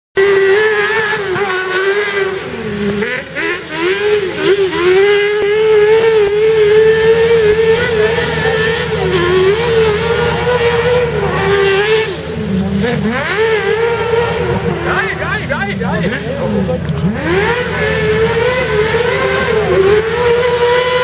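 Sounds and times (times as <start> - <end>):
racing buggy engines revving: 0.2 - 21.0.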